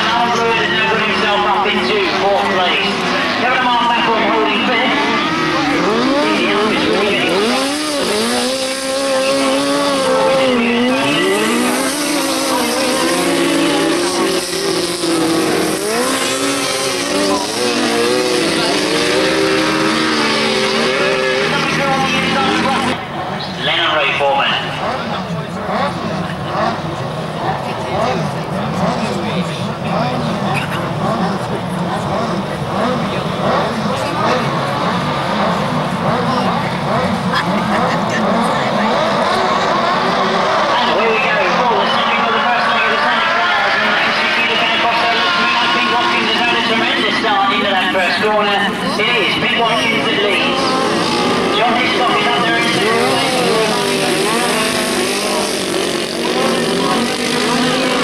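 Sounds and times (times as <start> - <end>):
motorcycle engines racing: 0.0 - 58.0.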